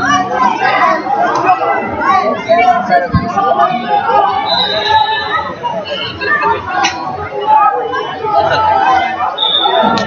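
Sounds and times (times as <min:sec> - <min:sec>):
crowd chatter in a hall: 0:00.0 - 0:10.0.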